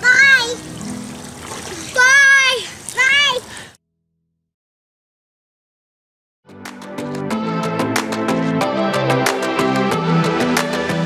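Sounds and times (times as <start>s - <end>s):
child shouting: 0.0s - 0.6s, 1.8s - 3.5s
water splashing in a pool: 0.0s - 3.8s.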